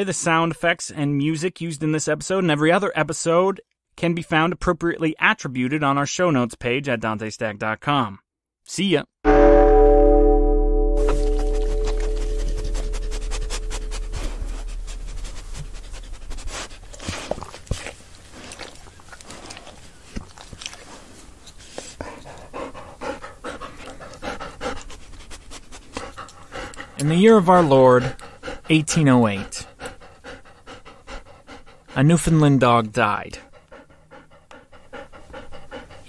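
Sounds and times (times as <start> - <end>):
music chord: 9.3 - 14.6
dog panting: 11.1 - 36.0.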